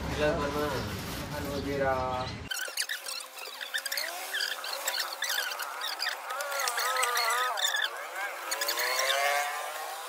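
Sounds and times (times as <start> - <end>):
high-pitched voice calling: 2.5 - 9.3.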